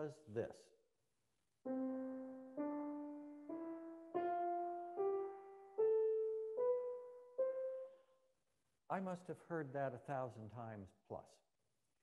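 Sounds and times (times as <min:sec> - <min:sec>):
grand piano ascending scale: 0:01.7 - 0:08.0.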